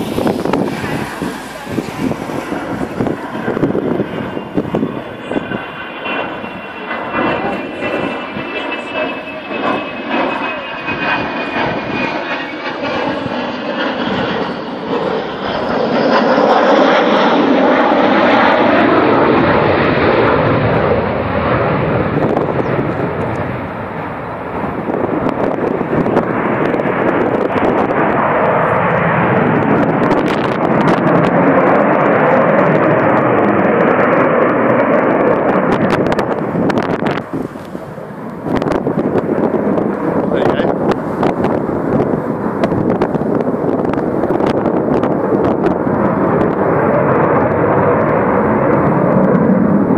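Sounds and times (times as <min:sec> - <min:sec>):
jet engine roar: 0:00.0 - 0:49.9.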